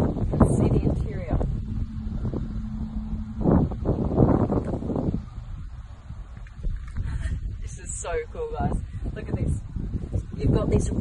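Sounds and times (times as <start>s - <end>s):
thin low hum: 0.0s - 10.4s
wind rumbling on microphone: 0.0s - 11.0s.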